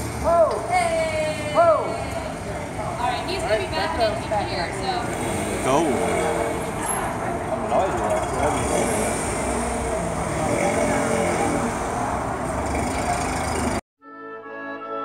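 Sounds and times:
voices: 0.2 - 13.8
small car driving slowly past: 1.8 - 13.8.

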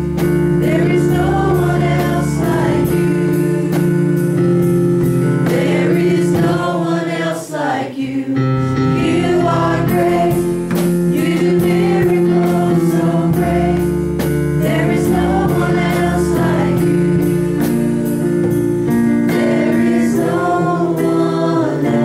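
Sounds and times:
sustained instrumental chords: 0.0 - 7.3, 8.2 - 22.0
group singing into microphones: 0.5 - 4.4, 5.0 - 22.0.

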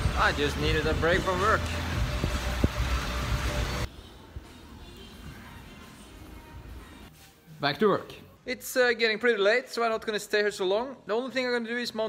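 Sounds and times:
air bike fan whooshing: 0.0 - 3.9
faint music: 0.0 - 12.0.

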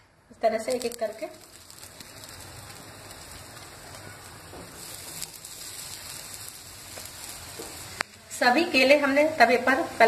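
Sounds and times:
oil sizzling on a griddle: 0.4 - 10.0.

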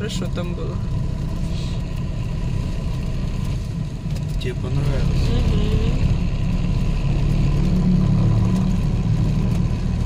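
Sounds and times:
car engine rumble: 0.0 - 10.0
road noise: 0.0 - 10.0.

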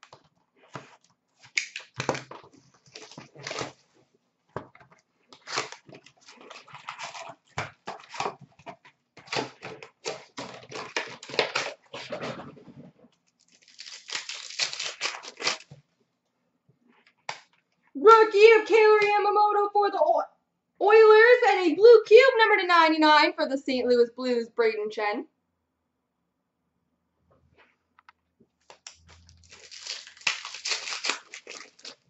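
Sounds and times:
card pack wrappers tearing and crinkling: 0.7 - 3.9, 5.3 - 8.4, 9.2 - 12.3, 13.3 - 15.8, 28.6 - 32.0.

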